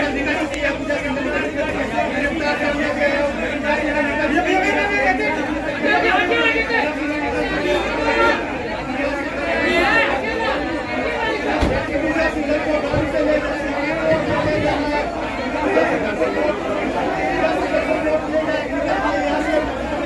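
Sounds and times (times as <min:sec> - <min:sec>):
people talking over one another: 0:00.0 - 0:20.0.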